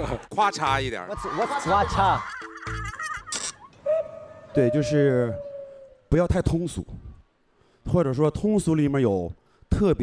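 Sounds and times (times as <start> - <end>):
laughter: 1.4 - 3.7
man asking a question: 4.5 - 6.9.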